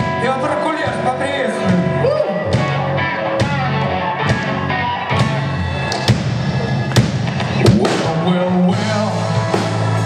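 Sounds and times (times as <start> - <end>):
rock band playing: 0.0 - 10.0
drum kit strikes: 5.2 - 10.0.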